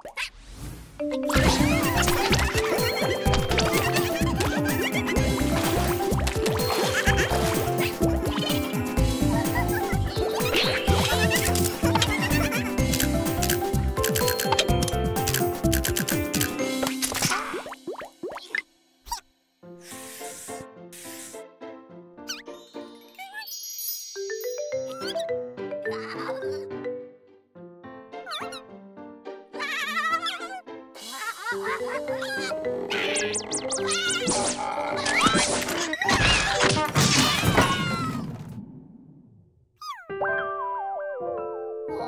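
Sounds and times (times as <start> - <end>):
bouncy children's music: 1.0 - 17.6, 21.8 - 36.9
hiss bursts: 19.8 - 21.4
chiming jingle: 22.5 - 25.5.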